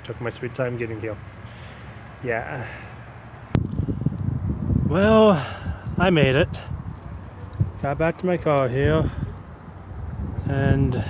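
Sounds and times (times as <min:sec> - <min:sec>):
wind buffeting microphone: 0:03.4 - 0:11.0.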